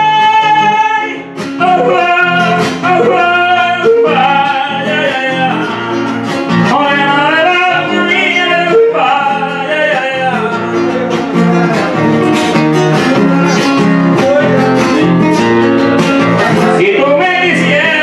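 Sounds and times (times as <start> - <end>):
acoustic guitar: 0.0 - 18.0
man singing into microphone: 0.0 - 18.0.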